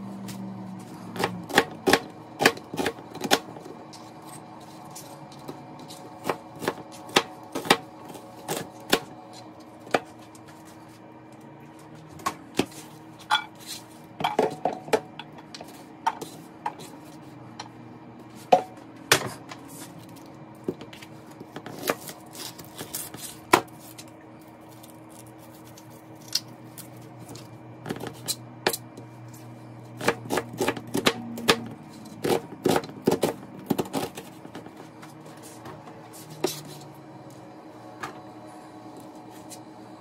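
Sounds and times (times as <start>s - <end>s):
knife chopping on plastic board: 1.2s - 3.5s, 6.2s - 7.9s, 29.9s - 34.7s.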